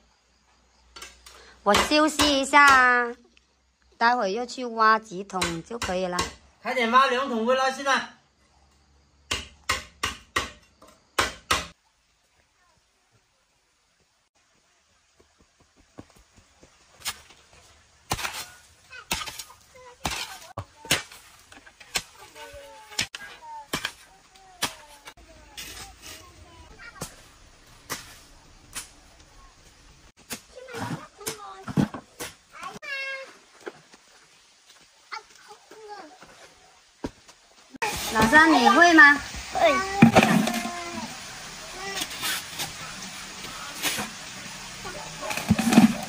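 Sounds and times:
faint children's voices: 12.2 - 13.2, 22.0 - 27.5, 39.4 - 42.4
shovel scraping sand and soil: 17.0 - 17.4, 18.0 - 29.2, 37.8 - 46.0
soil tipped into plastic bucket: 45.2 - 46.0.

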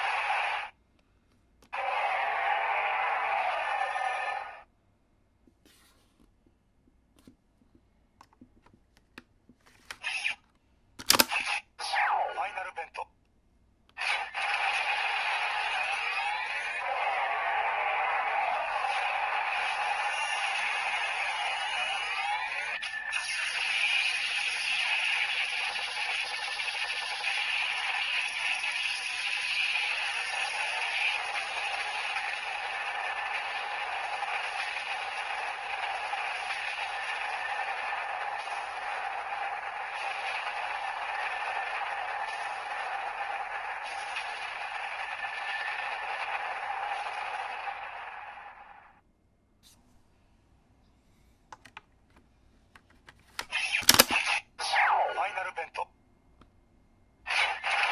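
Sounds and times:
grainy electronic toy noise: 1.7 - 4.7, 10.0 - 10.4, 11.2 - 12.9, 14.0 - 48.5, 53.4 - 55.8, 57.3 - 57.9.

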